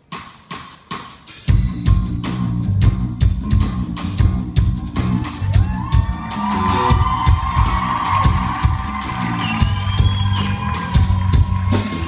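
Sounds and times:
drum kit beat: 0.0 - 12.0
bass line: 1.5 - 12.0.

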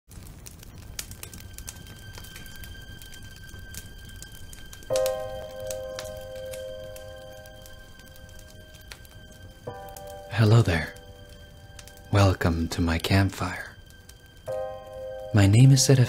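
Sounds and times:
campfire crackling: 0.1 - 16.0.

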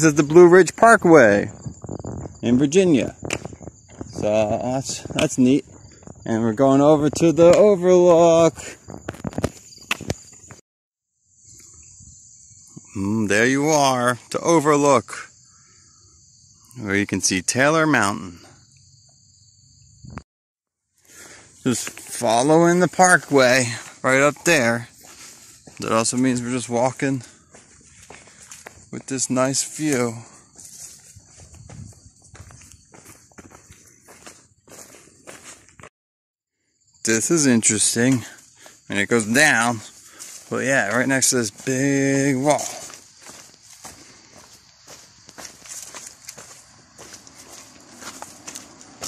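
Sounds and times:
insects chirring: 0.0 - 20.2, 20.9 - 35.9, 36.5 - 49.0
footsteps on paved road: 3.0 - 6.3, 21.7 - 35.9, 38.0 - 49.0.

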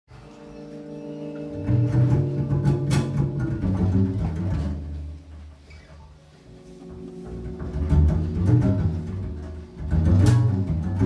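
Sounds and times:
double bass notes: 0.2 - 11.0.

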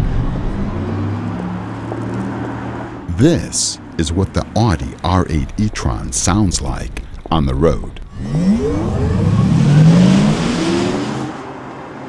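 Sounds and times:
electric car electronic hum: 6.4 - 11.4.

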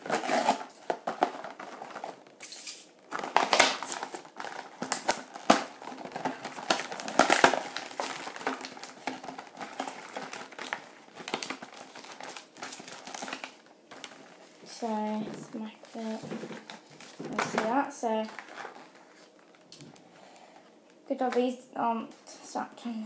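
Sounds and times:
plastic packaging crinkling: 0.0 - 20.1.

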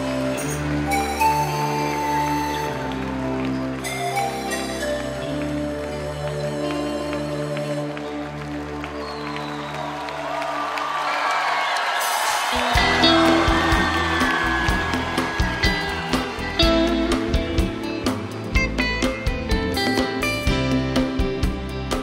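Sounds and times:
crowd cheering and applauding: 0.0 - 22.0.

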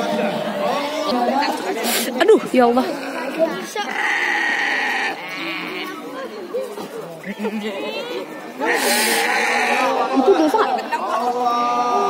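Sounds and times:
goat bleating: 2.8 - 5.9, 8.6 - 10.0.

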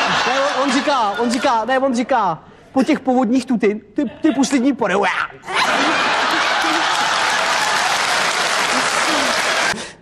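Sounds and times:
studio audience applauding: 5.6 - 9.9.

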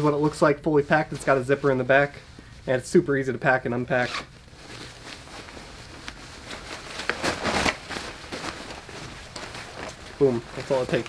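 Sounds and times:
jacket fabric rustling: 0.0 - 11.0.

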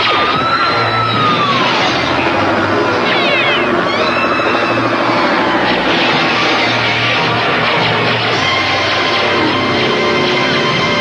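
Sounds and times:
action music score: 0.0 - 11.0
cartoon helicopter flying: 0.0 - 11.0
sliding high-pitched effects: 0.0 - 11.0.

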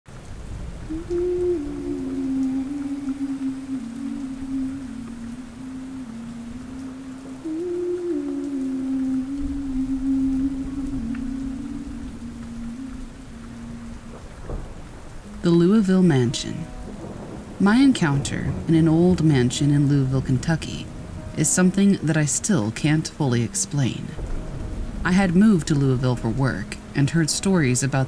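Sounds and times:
slow wordless melody: 0.1 - 28.0
steady rain: 0.1 - 28.0.

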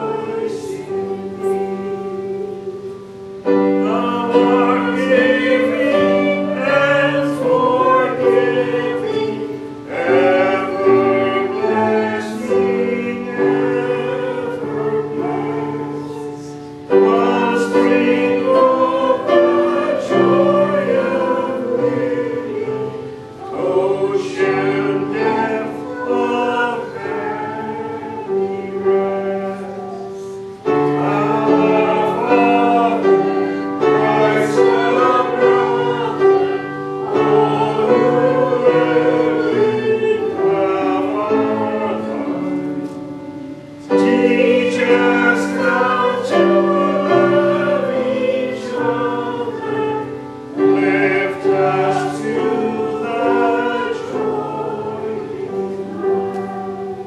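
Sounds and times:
choir singing held chords: 0.0 - 57.0.

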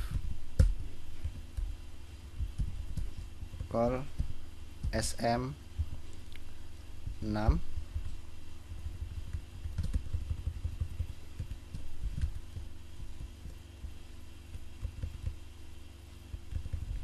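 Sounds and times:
low electrical hum: 0.0 - 17.0
computer keyboard clicking: 8.8 - 12.6.

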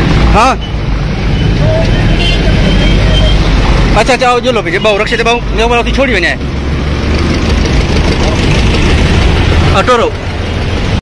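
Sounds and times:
busy street traffic rumble: 0.0 - 11.0.

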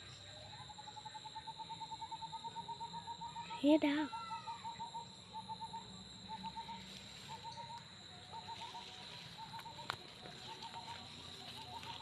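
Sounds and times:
high-pitched insect drone: 0.2 - 12.0
rapid animal calls: 0.8 - 12.0.

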